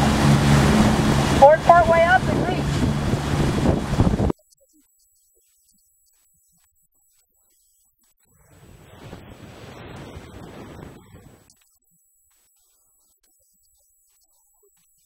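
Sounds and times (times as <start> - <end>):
churning wake water: 0.0 - 4.3, 8.4 - 11.5
motorboat rushing water: 0.0 - 4.3, 8.5 - 11.5
wind on microphone: 0.0 - 4.3, 8.5 - 11.5.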